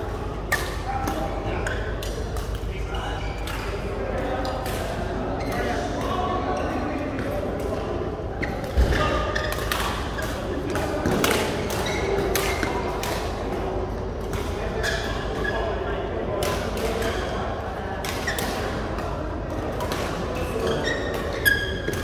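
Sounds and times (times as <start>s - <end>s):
voices in a hall: 0.0s - 22.0s.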